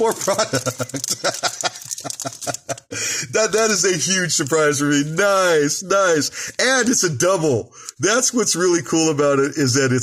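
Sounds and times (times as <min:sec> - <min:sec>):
man laughing: 0:00.0 - 0:03.6.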